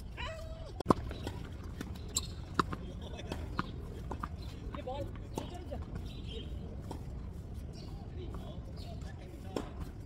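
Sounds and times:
tennis ball bouncing on hard court: 0:00.9 - 0:06.1.

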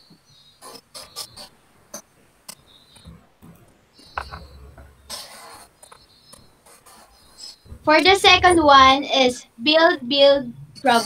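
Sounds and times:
faint rubbing and scratching: 0:00.6 - 0:11.0
woman speaking: 0:07.8 - 0:11.0.

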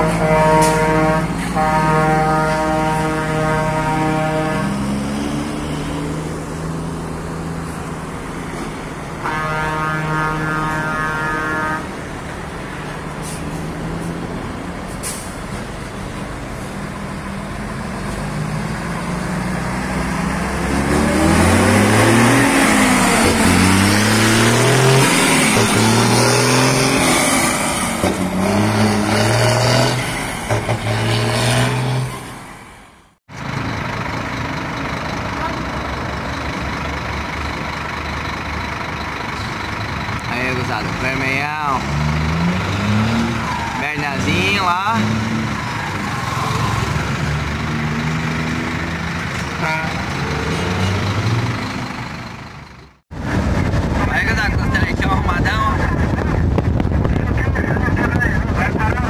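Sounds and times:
diesel truck pulling away: 0:00.0 - 0:59.0
traffic noise: 0:00.0 - 0:59.0.

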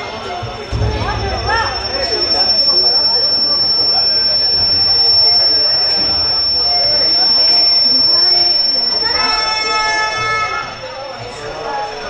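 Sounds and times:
high-pitched whine: 0:00.7 - 0:10.8.

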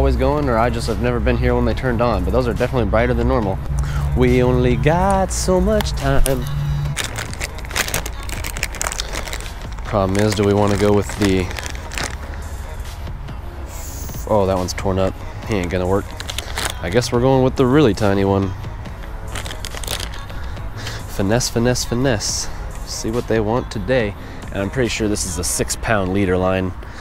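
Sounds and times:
low steady rumble: 0:01.0 - 0:13.7
plastic bag crinkling: 0:05.7 - 0:12.5, 0:15.5 - 0:17.0, 0:19.3 - 0:20.5.

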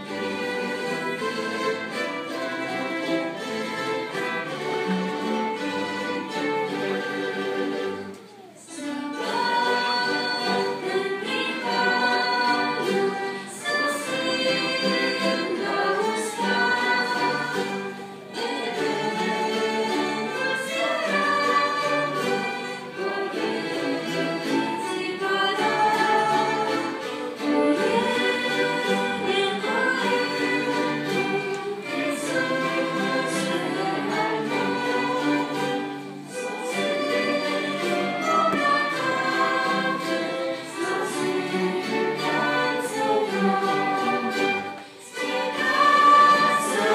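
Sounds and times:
choir singing a hymn: 0:00.0 - 0:46.9
string orchestra: 0:00.0 - 0:46.9.

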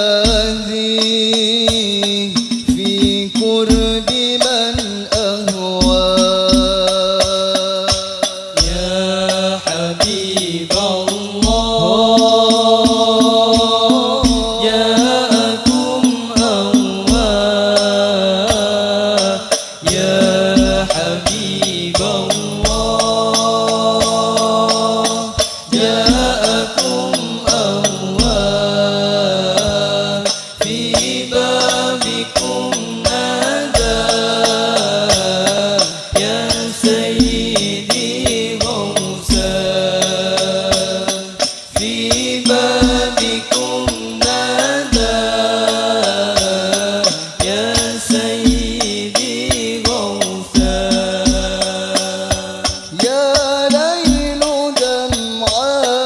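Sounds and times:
frame drums: 0:00.0 - 0:56.0
men chanting a sung melody: 0:00.0 - 0:56.0.

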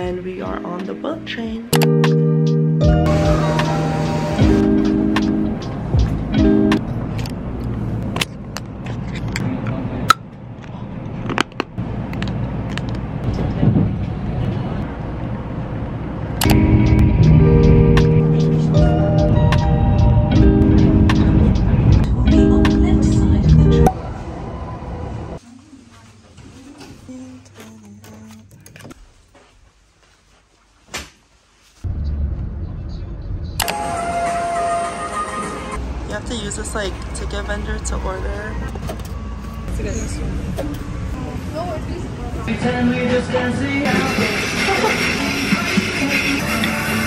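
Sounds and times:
background music sustained notes: 0:00.0 - 0:07.0, 0:16.4 - 0:25.4
train cabin rumble: 0:13.0 - 0:14.9, 0:16.5 - 0:25.4
steady held tones: 0:16.4 - 0:25.4.

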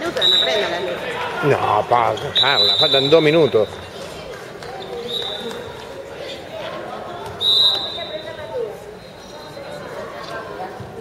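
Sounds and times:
voices of players and onlookers: 0:00.0 - 0:11.0
referee's whistle blasts: 0:00.2 - 0:00.7, 0:02.3 - 0:03.6, 0:07.4 - 0:08.4.

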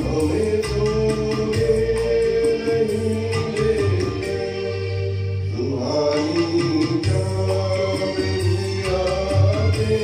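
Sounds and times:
man singing into a microphone: 0:00.0 - 0:04.8, 0:05.5 - 0:10.0
instrumental backing track: 0:00.0 - 0:10.0.

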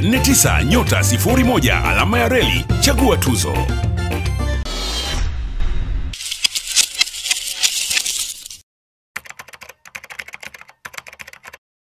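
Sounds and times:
rapid keyboard typing clicks: 0:09.2 - 0:11.6.

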